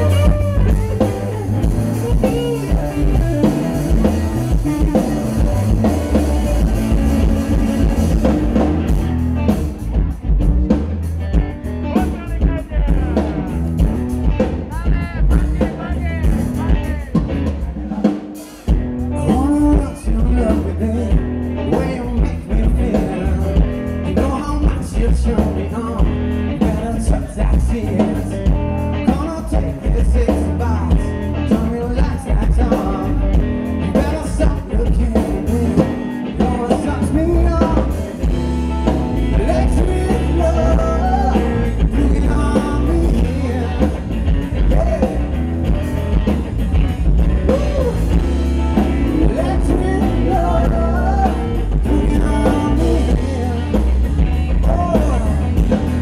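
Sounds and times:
electric guitars: 0.0s - 56.0s
rock band playing live: 0.0s - 56.0s
steady drum beat: 0.0s - 56.0s.

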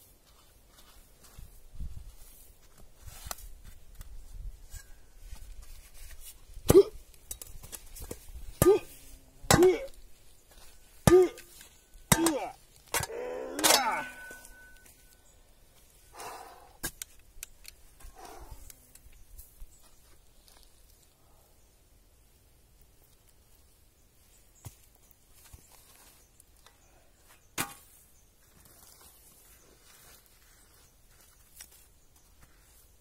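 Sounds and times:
metal spade clanking in dirt: 6.8s - 10.0s, 11.0s - 15.2s, 27.6s - 28.0s
shovel blade metallic clank: 13.0s - 15.0s.

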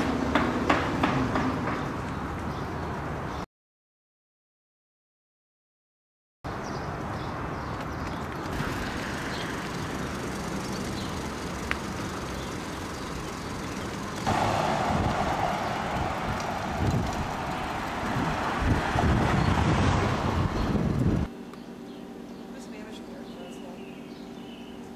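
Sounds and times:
car traffic hum: 0.0s - 3.4s, 6.5s - 22.0s
low rumbles: 8.5s - 21.3s.

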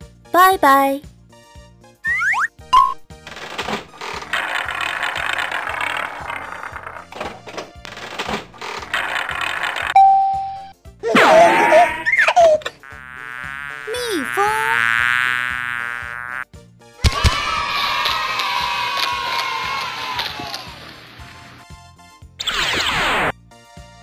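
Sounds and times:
gliding cartoon sounds: 11.1s - 16.4s
cartoon bee buzzing: 12.5s - 16.4s
confetti cannon pop: 17.0s - 17.5s.

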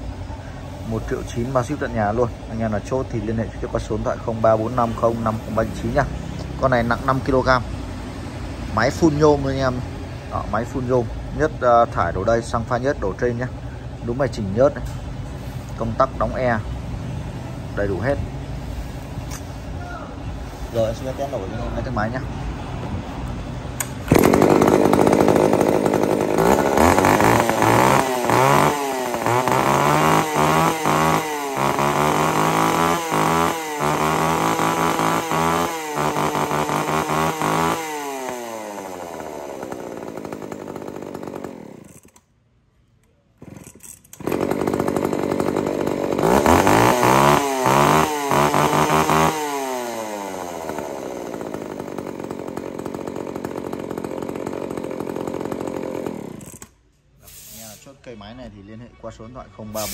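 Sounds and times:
chainsaw pull start: 0.8s - 7.9s, 14.1s - 16.7s, 17.5s - 19.7s, 20.4s - 22.2s, 23.8s - 42.3s, 43.4s - 57.8s
chainsaw revving and idling: 0.8s - 19.7s, 20.4s - 23.0s, 23.8s - 42.3s, 43.4s - 56.8s.

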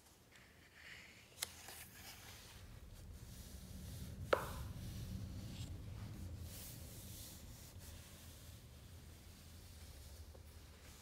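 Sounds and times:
hand rubbing book page: 0.3s - 11.0s.

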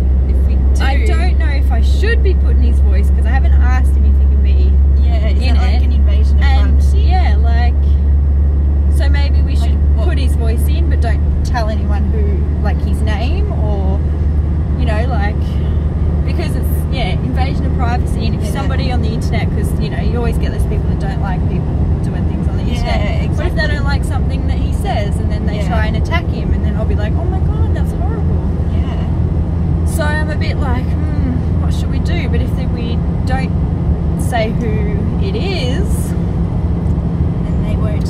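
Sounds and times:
road and engine rumble in car: 0.0s - 38.0s
woman talking: 0.3s - 8.0s, 8.9s - 14.1s, 14.8s - 15.6s, 16.3s - 29.1s, 29.9s - 33.5s, 34.2s - 36.2s, 37.4s - 38.0s.

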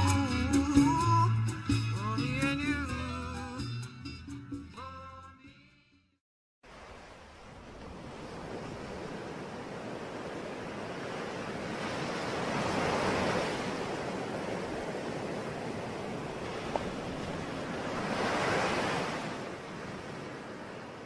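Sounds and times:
ocean waves washing: 6.6s - 21.0s.

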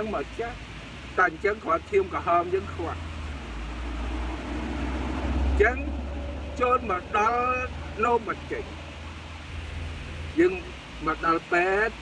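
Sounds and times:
man speaking: 0.0s - 0.6s, 1.2s - 3.0s, 5.6s - 6.0s, 6.6s - 8.8s, 10.4s - 12.0s
passing vehicle rumble: 0.0s - 12.0s.

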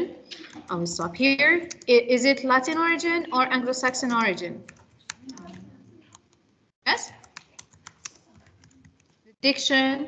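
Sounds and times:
computer keyboard typing: 0.4s - 2.1s, 3.7s - 6.5s, 7.1s - 9.2s.

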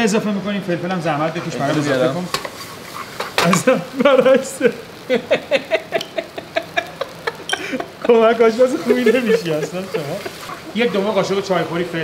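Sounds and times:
man laughing hard: 4.0s - 11.2s.

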